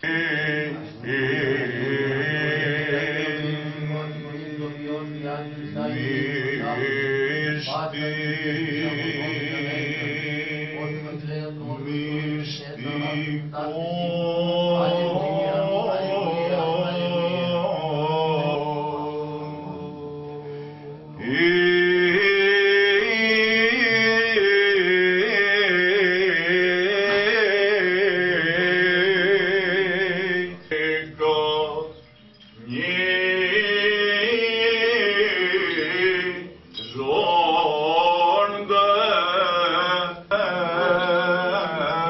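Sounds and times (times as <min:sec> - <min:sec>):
chanters singing over a drone: 0:29.8 - 0:38.7.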